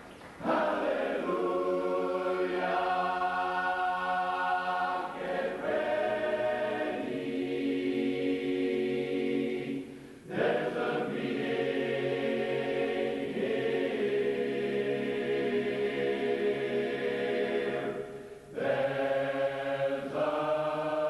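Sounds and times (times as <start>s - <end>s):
men's chorus singing a cappella: 0.4s - 21.0s.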